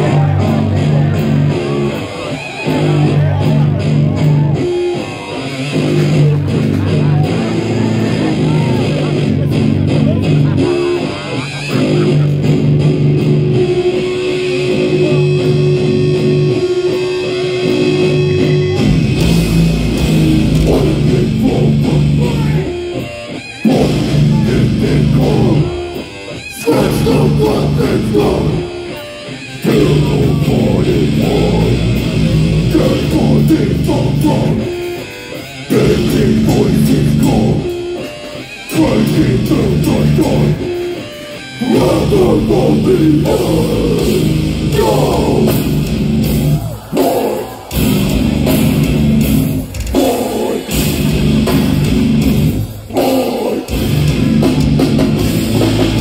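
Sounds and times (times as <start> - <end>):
chugging low guitar riff: 0.0 - 56.0
death metal band playing live: 0.0 - 56.0.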